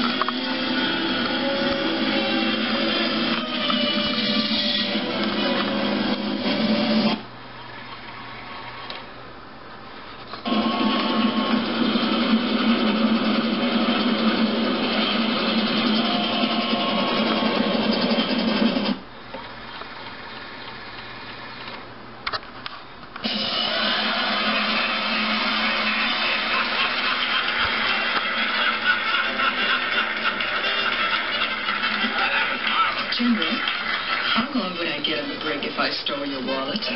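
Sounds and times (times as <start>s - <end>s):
music soundtrack playing: 0.0s - 7.2s, 23.2s - 33.4s.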